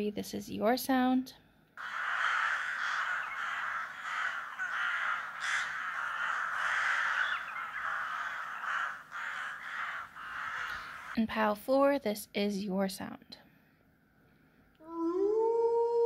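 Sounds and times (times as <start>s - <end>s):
crows cawing: 1.8s - 11.2s.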